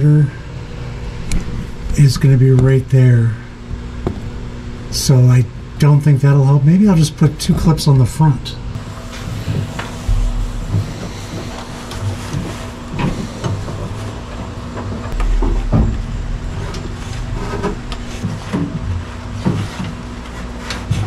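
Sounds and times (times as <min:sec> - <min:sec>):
steady background hum: 0:00.0 - 0:21.0.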